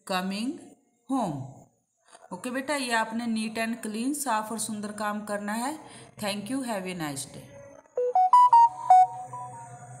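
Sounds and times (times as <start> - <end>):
electronic chime melody: 8.0 - 10.0.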